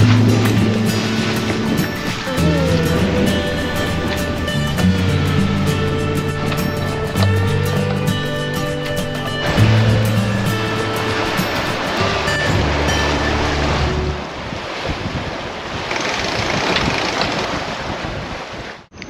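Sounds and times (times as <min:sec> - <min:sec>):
background music: 0:00.0 - 0:14.3
water rushing along hull: 0:00.0 - 0:18.9
wind on microphone: 0:00.0 - 0:19.0.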